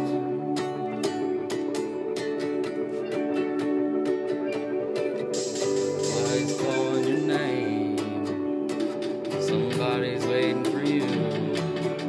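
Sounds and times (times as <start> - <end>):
guitar strumming: 0.0 - 12.0.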